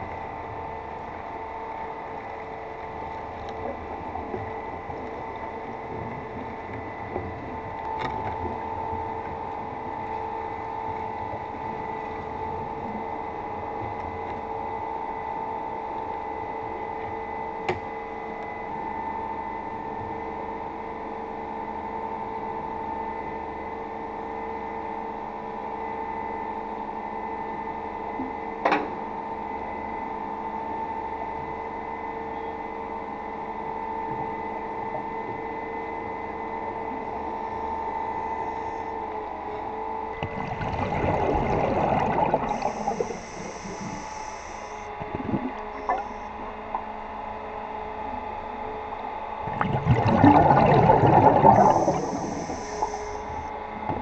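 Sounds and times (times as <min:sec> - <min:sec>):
underwater mechanical hum: 0:00.0 - 0:54.0.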